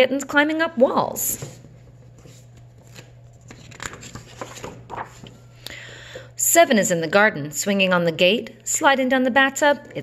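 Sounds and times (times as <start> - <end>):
paper page turning: 2.0 - 5.5.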